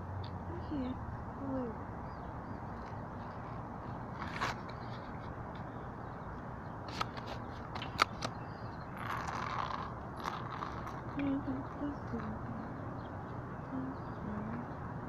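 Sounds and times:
outdoor background hiss: 0:00.0 - 0:15.0
camera handling rustle: 0:04.1 - 0:05.7, 0:06.9 - 0:08.4.

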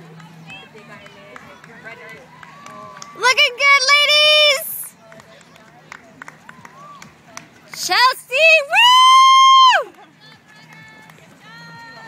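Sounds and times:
faint background chatter: 0:00.0 - 0:12.0
woman cheering shout: 0:08.4 - 0:09.9.

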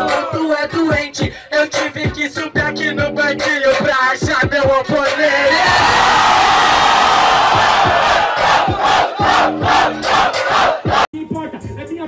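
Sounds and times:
crowd shouting and cheering: 0:05.3 - 0:11.1.

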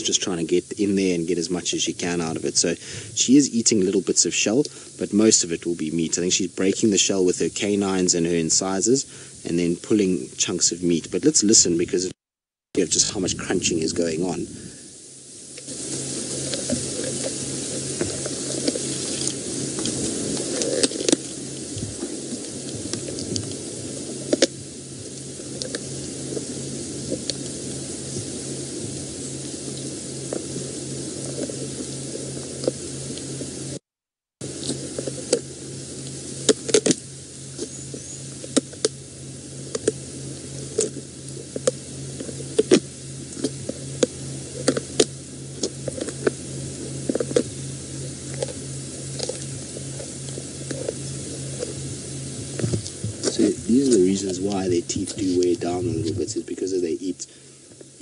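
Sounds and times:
steady hiss: 0:00.0 - 0:12.2, 0:12.8 - 0:58.0.

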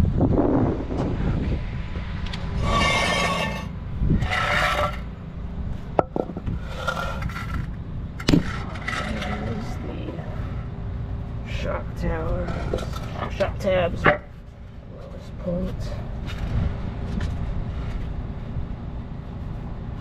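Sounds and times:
low steady rumble: 0:00.0 - 0:20.0
wooden boards scraping on concrete: 0:02.4 - 0:05.1, 0:06.0 - 0:10.8, 0:12.3 - 0:14.6
wood knocking on concrete: 0:06.0 - 0:06.5.

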